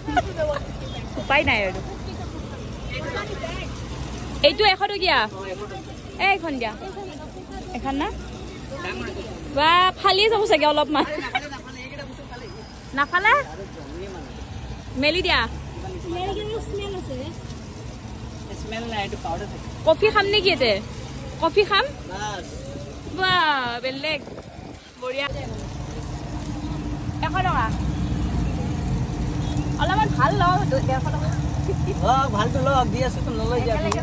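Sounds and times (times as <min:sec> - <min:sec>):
background chatter of voices: 0:00.0 - 0:34.0.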